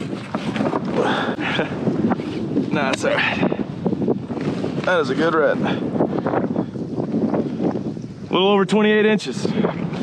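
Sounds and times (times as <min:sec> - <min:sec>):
water lapping against kayak: 0:00.0 - 0:10.0
wind buffeting microphone: 0:00.0 - 0:10.0.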